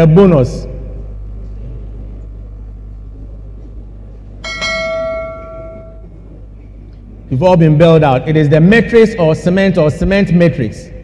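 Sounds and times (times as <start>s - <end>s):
steady low hum: 0.0s - 11.0s
bell ringing: 4.4s - 6.2s.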